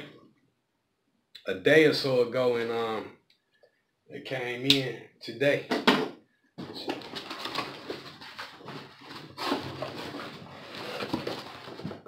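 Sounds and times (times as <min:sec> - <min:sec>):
plastic bag rustling and crinkling: 0:06.6 - 0:12.0.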